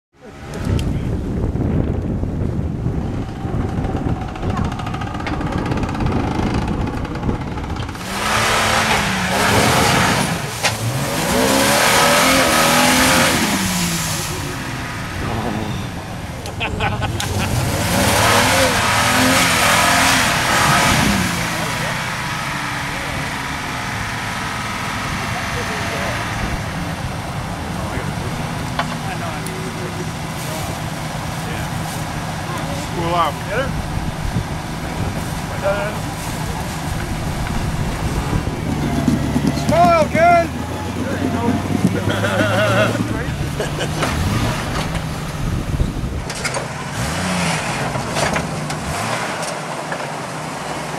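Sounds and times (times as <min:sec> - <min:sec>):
off-road vehicle engine revving: 0:00.2 - 0:50.9.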